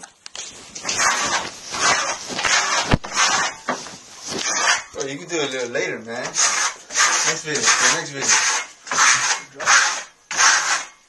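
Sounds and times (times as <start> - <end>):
trowel scraping wet plaster: 0.8 - 5.0, 6.2 - 11.0.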